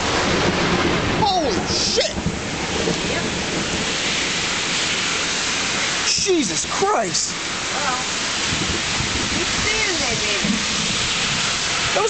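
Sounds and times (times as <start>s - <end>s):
heavy rain hissing: 0.0s - 12.0s.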